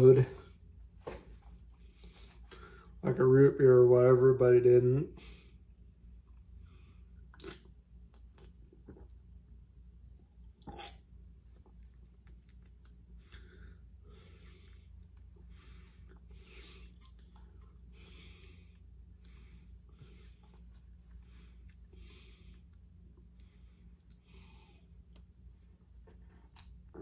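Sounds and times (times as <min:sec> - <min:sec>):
swallows and lip smacks: 0:07.3 - 0:09.2, 0:10.6 - 0:11.1.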